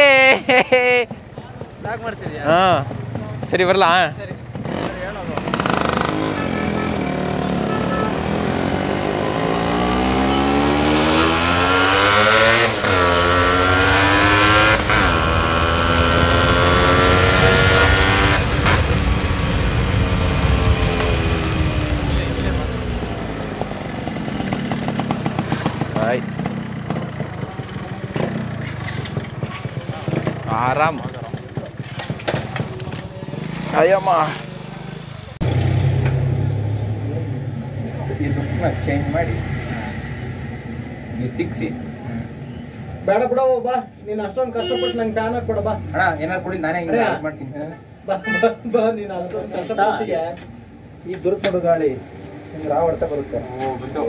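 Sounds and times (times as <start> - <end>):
motorcycle engine shifting gears: 4.4 - 38.3.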